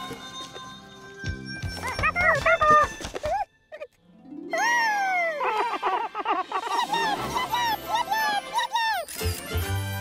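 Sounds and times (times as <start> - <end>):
squeaky cartoon voice babbling: 7.0 - 9.4.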